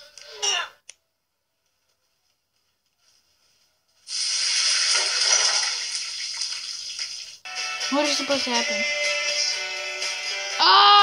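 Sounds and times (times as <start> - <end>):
music with singing: 7.5 - 11.0.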